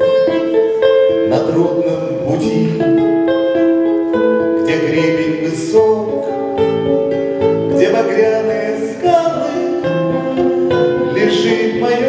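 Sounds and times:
acoustic guitar chords: 0:00.0 - 0:12.0
man singing: 0:00.0 - 0:12.0.

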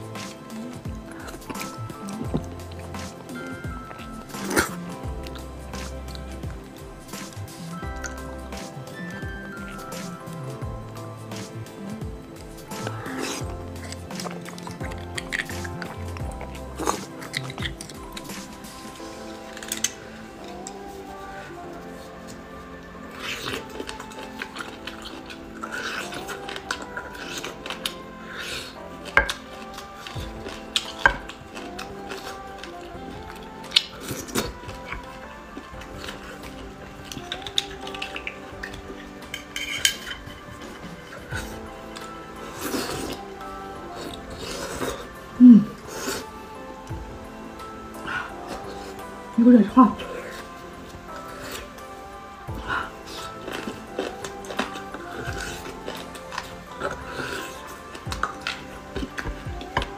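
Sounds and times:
background music: 0:00.0 - 0:59.9
metal spoon clinking on bones: 0:36.0 - 0:41.3.

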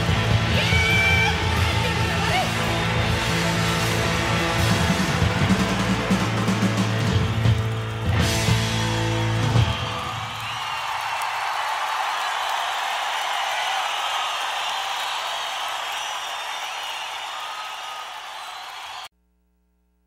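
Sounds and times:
audience applauding and cheering: 0:00.0 - 0:19.1.

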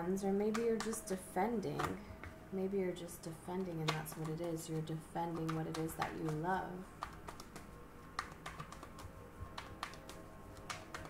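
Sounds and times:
cards being shuffled: 0:03.6 - 0:04.6, 0:05.3 - 0:11.0.

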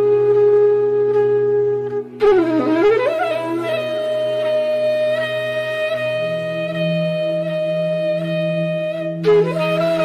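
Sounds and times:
bamboo flute long note: 0:00.0 - 0:10.0.

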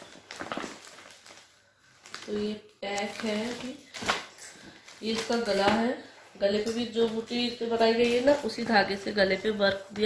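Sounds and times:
plastic packing rustling: 0:00.0 - 0:10.0.

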